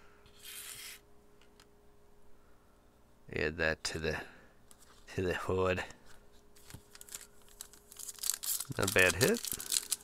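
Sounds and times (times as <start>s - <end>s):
cardboard cards rustling: 6.0s - 10.0s.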